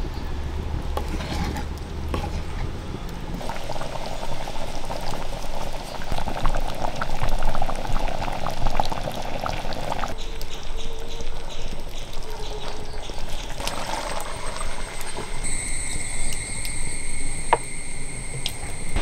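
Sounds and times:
ladle stirring in pan: 0:01.0 - 0:02.7
curry bubbling and popping in pan: 0:03.4 - 0:10.6.

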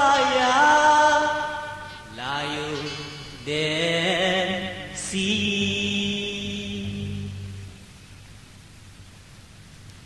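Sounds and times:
person singing a melody: 0:00.0 - 0:07.8.

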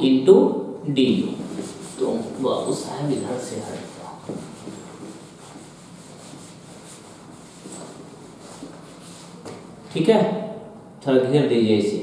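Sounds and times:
duster rubbing on whiteboard: 0:01.3 - 0:09.5.

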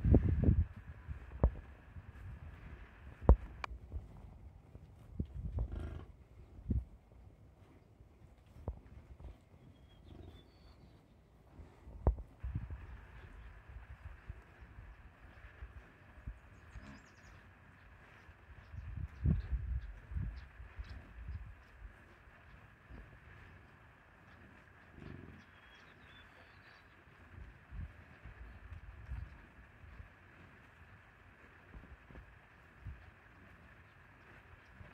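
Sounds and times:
bison grunting: 0:05.6 - 0:06.1
faint bird chirps: 0:09.4 - 0:11.2, 0:15.2 - 0:22.7, 0:23.3 - 0:29.4.

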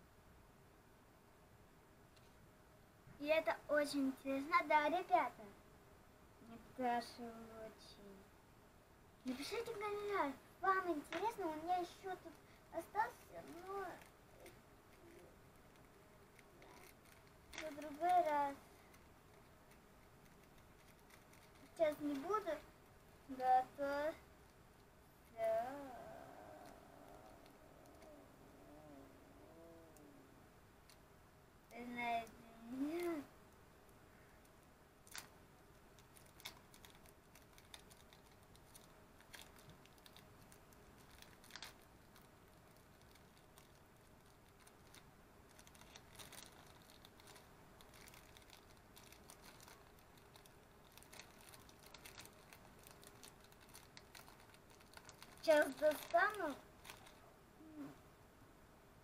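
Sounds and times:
faint clicks and paper rustles: 0:02.1 - 0:02.4, 0:09.2 - 0:28.2, 0:31.7 - 0:57.3.

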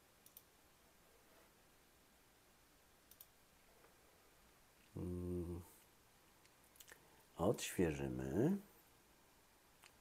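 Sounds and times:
computer mouse clicks: 0:00.2 - 0:00.5, 0:03.0 - 0:03.4
man humming hesitantly: 0:04.9 - 0:05.8.

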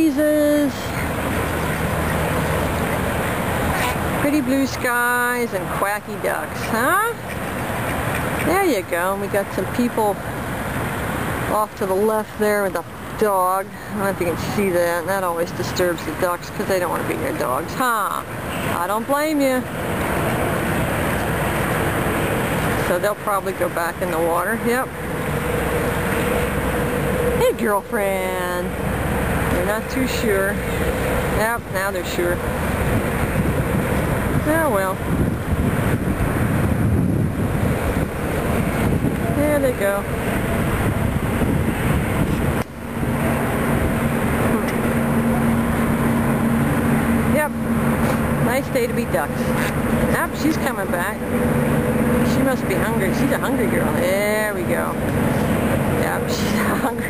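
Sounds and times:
wind blowing across microphone: 0:14.2 - 0:57.0
rushing noise: 0:23.7 - 0:57.0.

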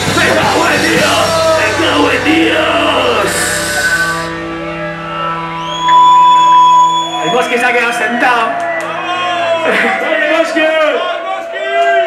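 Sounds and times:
rock band chord ringing out: 0:00.0 - 0:07.9
high feedback tone: 0:00.6 - 0:09.3.

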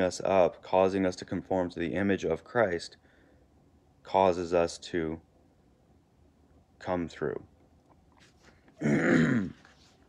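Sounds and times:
man clearing throat: 0:08.8 - 0:09.7.

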